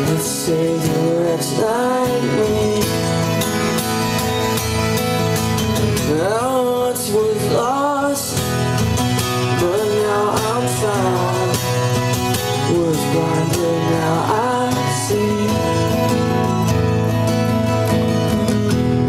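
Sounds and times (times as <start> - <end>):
man singing: 0.0 - 3.5, 6.0 - 16.4
acoustic guitars strummed and picked: 0.0 - 19.0.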